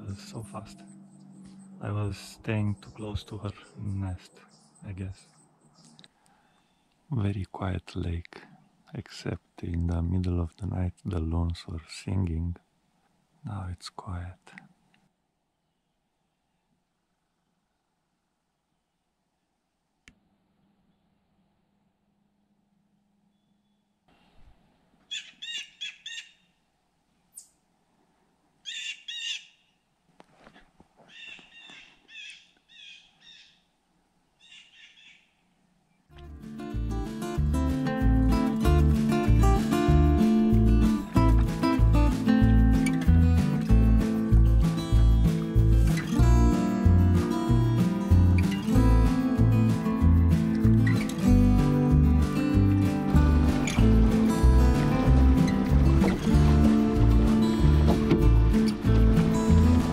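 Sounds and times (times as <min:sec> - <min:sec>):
bird calling high notes: 0:00.3 - 0:06.9
music with steady beat: 0:36.2 - 0:59.9.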